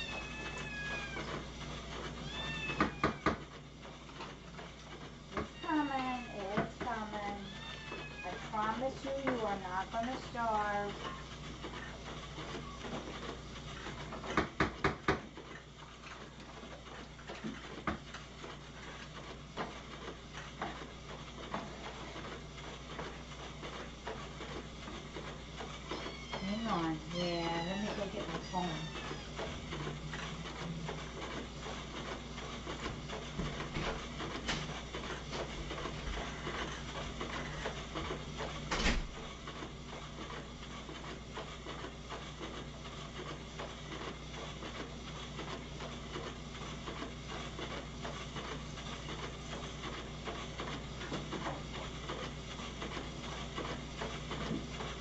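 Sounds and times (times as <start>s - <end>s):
cats meowing: 0.0s - 1.4s, 2.2s - 3.4s, 7.4s - 8.5s, 25.9s - 26.7s, 27.5s - 29.5s
steady low hum: 15.4s - 55.0s.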